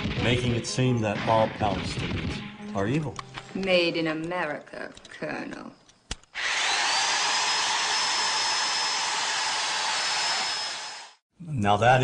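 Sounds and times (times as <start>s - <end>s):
electric drill motor whining: 6.3s - 11.2s.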